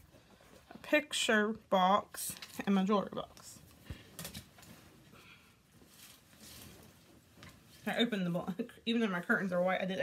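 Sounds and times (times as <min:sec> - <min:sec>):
clothing rustling: 0:02.2 - 0:10.0.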